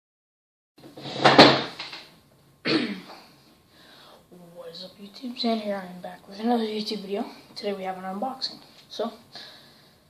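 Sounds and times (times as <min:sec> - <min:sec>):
rustling scrape of chair: 0:00.8 - 0:01.7.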